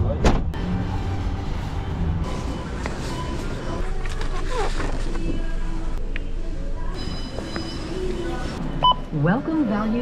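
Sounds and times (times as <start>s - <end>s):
store background noise: 1.8s - 10.0s.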